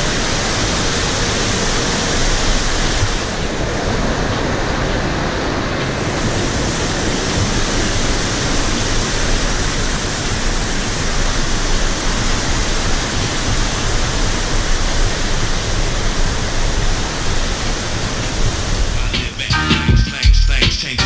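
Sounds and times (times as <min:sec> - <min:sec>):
mountain stream and waterfall roaring: 0:00.0 - 0:19.5.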